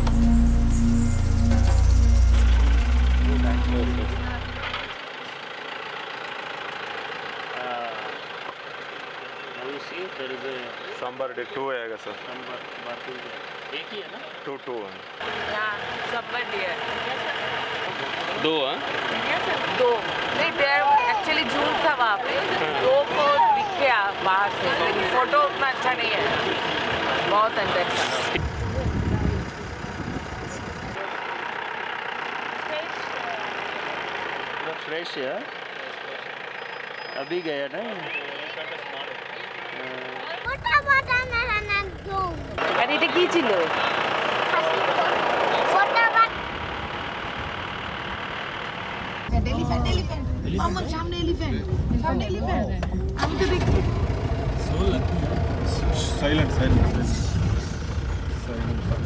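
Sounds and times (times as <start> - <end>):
background music: 0.0 - 4.8
passenger talking: 0.0 - 5.5, 6.9 - 31.7, 32.4 - 47.0, 49.2 - 59.0
vehicle engine running: 0.0 - 59.0.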